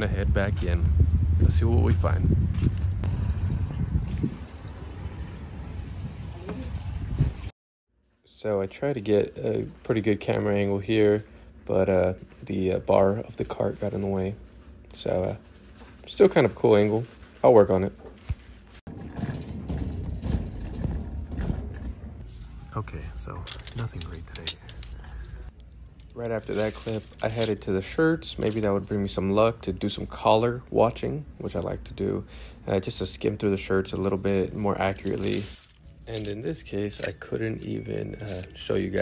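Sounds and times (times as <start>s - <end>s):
low outdoor rumble: 0.0s - 7.5s
shopping cart wheels rumbling: 18.9s - 22.2s.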